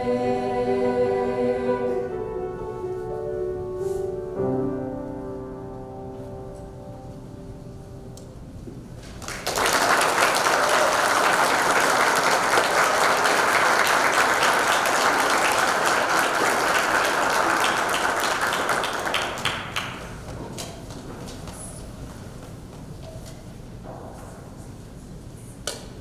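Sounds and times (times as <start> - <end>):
audience applauding: 9.0 - 20.4.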